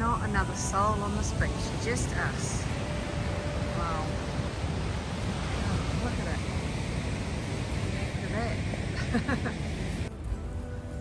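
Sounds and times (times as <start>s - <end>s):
surf breaking on beach: 0.0s - 10.1s
wind rumbling on microphone: 0.0s - 11.0s.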